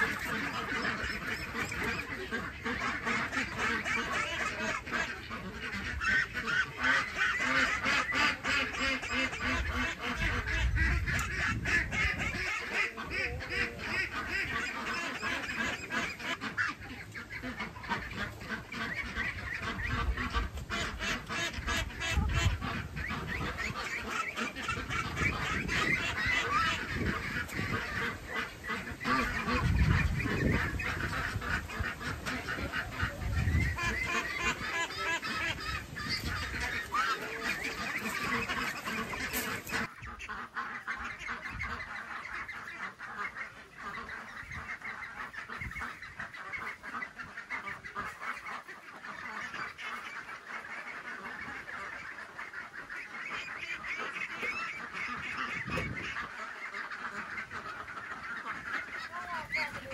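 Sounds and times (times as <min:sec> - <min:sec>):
ducks quacking: 0:00.0 - 0:59.9.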